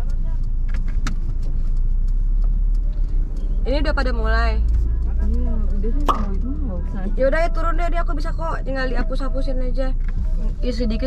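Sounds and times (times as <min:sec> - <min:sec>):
car engine running inside cabin: 0:00.0 - 0:11.0.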